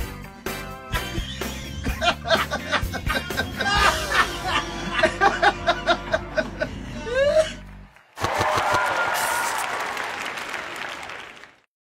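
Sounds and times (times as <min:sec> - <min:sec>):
studio audience applauding: 0:06.4 - 0:11.7.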